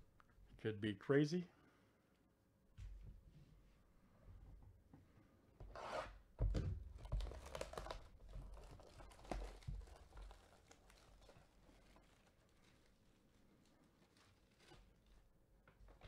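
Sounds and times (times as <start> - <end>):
plastic shrink wrap tearing: 7.0 - 15.3.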